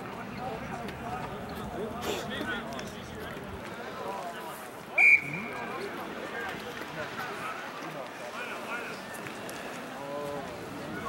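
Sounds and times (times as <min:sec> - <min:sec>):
distant shouting and talk: 0:00.0 - 0:11.0
referee's whistle blast: 0:05.0 - 0:05.6.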